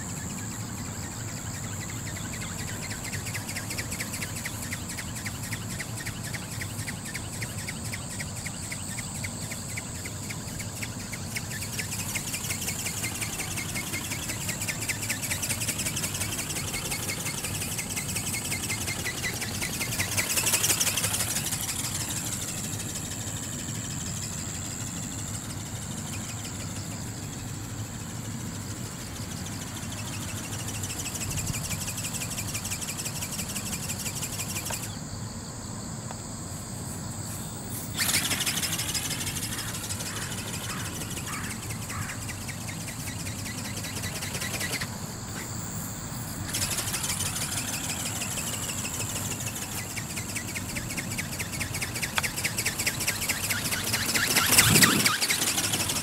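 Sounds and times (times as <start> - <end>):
robot bird motor buzzing: 0.0 - 35.1, 37.2 - 56.0.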